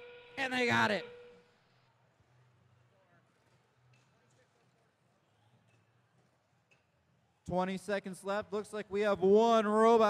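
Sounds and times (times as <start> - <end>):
man's voice: 0.4 - 1.1, 7.5 - 10.0.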